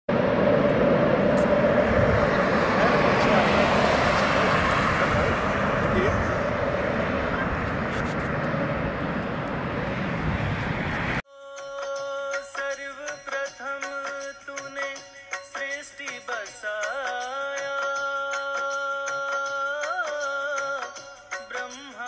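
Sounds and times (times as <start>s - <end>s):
jet engines rushing and whining: 0.1s - 11.2s.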